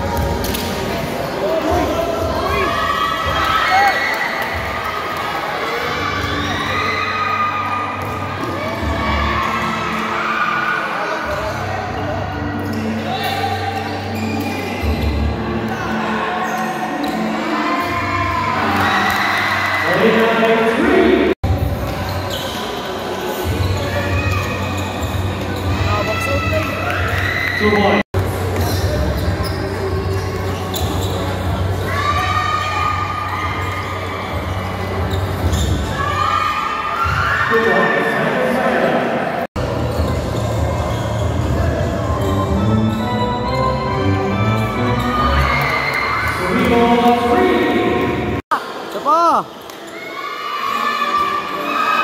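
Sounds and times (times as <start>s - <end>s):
players and spectators shouting: 1.4s - 14.2s, 14.8s - 21.4s, 31.6s - 39.3s, 40.5s - 52.0s.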